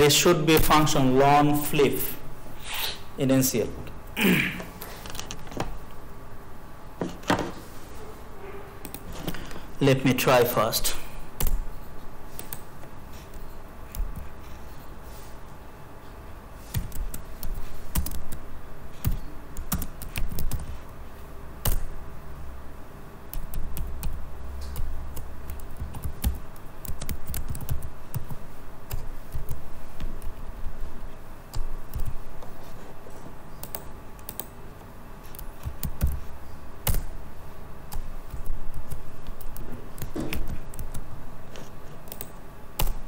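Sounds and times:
computer keyboard typing: 8.8s - 9.6s, 11.4s - 11.7s, 12.3s - 14.6s, 16.6s - 21.0s, 21.6s - 22.0s, 23.3s - 30.5s, 31.5s - 34.6s, 35.2s - 37.2s, 37.9s - 43.0s.

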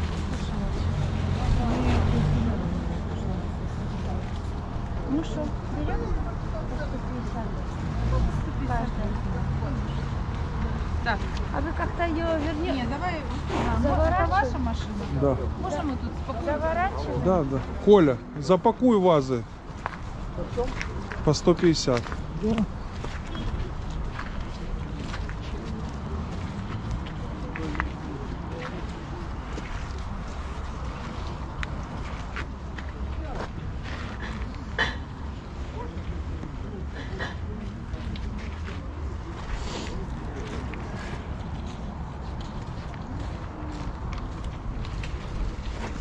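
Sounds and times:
murmur of people talking: 0.0s - 46.0s.

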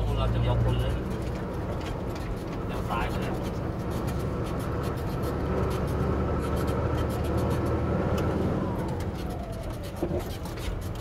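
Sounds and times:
rattles and knocks on rough road: 0.0s - 11.0s
truck engine running: 0.0s - 11.0s.

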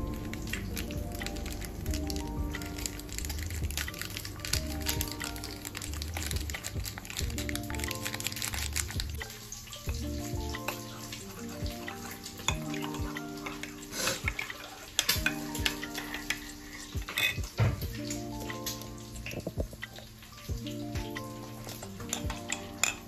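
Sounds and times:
music with chords and pulsing bass: 0.0s - 9.2s, 9.8s - 14.4s, 15.1s - 23.0s
small clicks and crackles: 0.0s - 23.0s.

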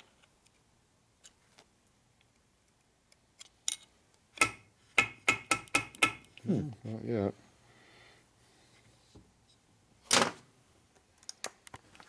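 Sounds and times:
metal rod tapping on metal: 4.4s - 6.3s.

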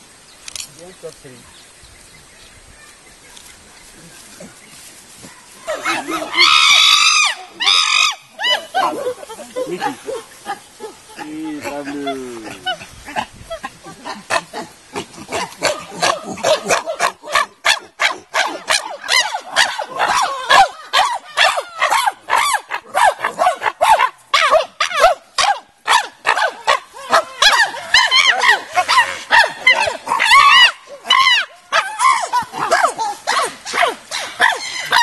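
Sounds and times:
chimpanzees panting calls and screams: 3.8s - 35.0s.

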